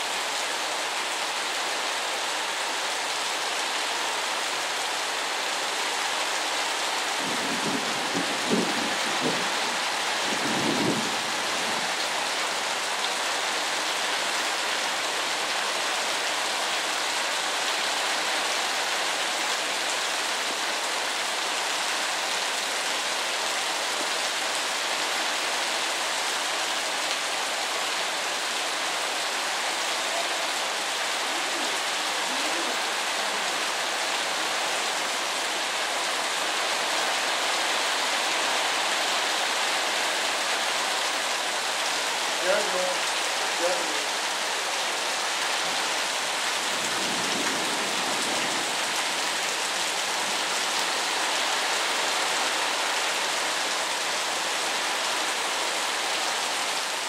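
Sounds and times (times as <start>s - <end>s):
heavy rain pouring: 0.0s - 57.0s.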